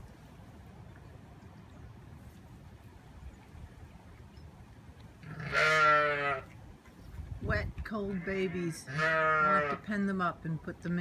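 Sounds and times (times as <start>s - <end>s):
sheep bleating: 5.2s - 6.5s, 8.1s - 9.8s.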